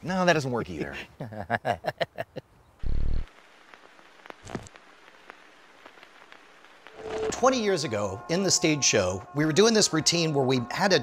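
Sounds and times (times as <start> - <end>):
low hiss: 0.0 - 11.0
faint crackle: 2.6 - 11.0.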